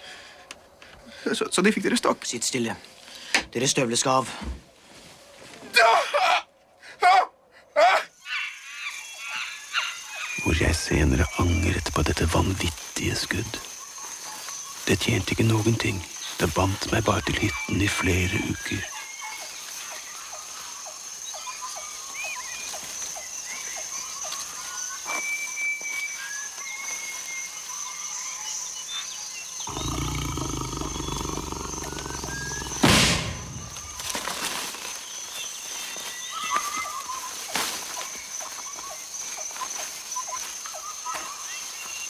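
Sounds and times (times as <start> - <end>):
birds chirping: 8.2 - 34.3
loud sharp bang with echo: 32.8 - 33.8.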